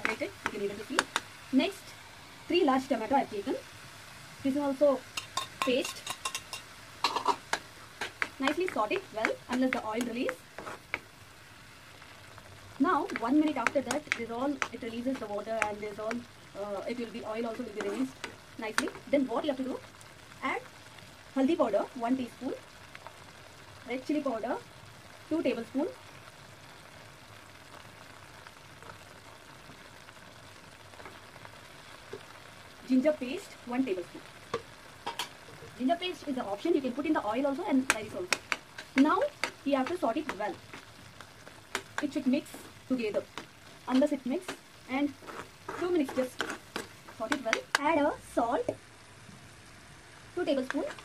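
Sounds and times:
small oil pops: 0:00.0 - 0:01.3, 0:05.2 - 0:11.1, 0:34.5 - 0:35.7, 0:37.8 - 0:42.2, 0:43.3 - 0:44.7, 0:45.3 - 0:47.9
faint sizzle in a pan: 0:00.0 - 0:51.0
spatula clicking on frying pan: 0:05.2 - 0:10.1, 0:37.9 - 0:40.4.

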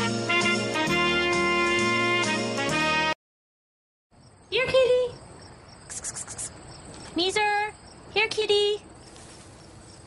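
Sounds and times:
crickets chirping: 0:04.1 - 0:10.0.

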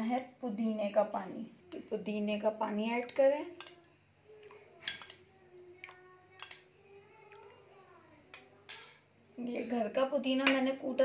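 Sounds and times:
metal spoon clinking glass bowl: 0:03.6 - 0:03.8, 0:04.8 - 0:05.3, 0:06.3 - 0:06.7, 0:08.3 - 0:09.0.

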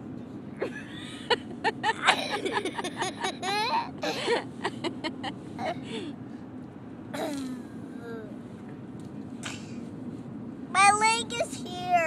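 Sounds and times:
child whining: 0:07.2 - 0:08.4.

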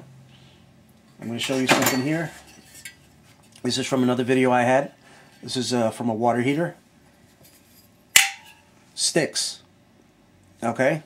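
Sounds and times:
magnet snapping onto steel: 0:08.2 - 0:08.6.

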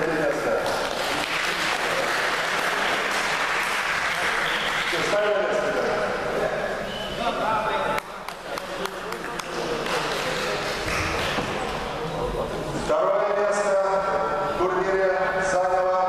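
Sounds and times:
sharp knocks or claps: 0:08.0 - 0:11.7.

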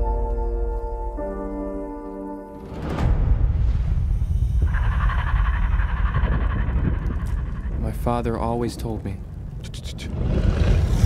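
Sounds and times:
deep steady rumble: 0:03.3 - 0:11.0.

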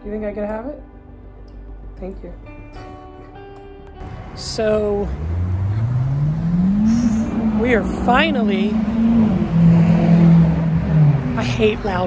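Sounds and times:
car engine accelerating: 0:04.0 - 0:12.0.

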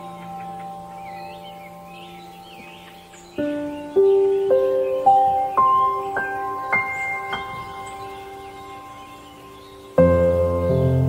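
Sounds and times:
ambient chime-like music: 0:00.0 - 0:11.0
birds chirping: 0:00.0 - 0:11.0.

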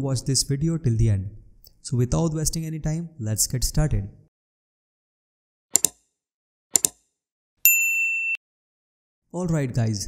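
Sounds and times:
electronic ding: 0:07.7 - 0:08.4.

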